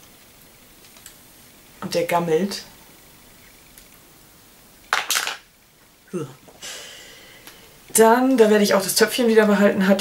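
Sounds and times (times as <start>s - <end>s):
pencil clattering: 5.0s - 5.4s.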